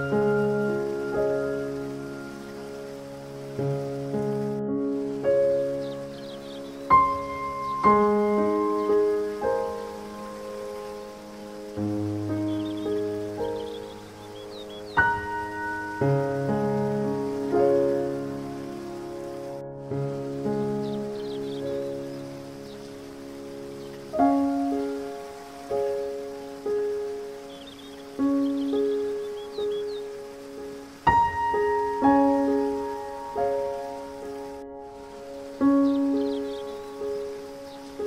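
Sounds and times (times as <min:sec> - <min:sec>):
falling water hiss: 0:00.0 - 0:38.0
gentle solo piano: 0:00.0 - 0:38.0.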